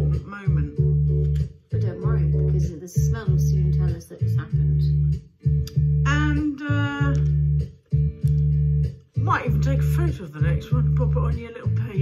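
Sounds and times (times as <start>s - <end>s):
bass and guitar backing track: 0.0s - 12.0s.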